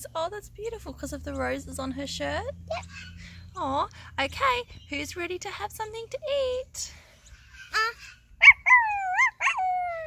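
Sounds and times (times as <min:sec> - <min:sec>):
person imitating dog yips: 0:07.7 - 0:10.0.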